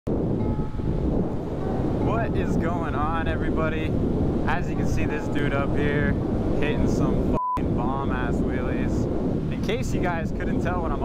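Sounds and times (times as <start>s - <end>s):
wind noise on microphone: 0.1s - 11.0s.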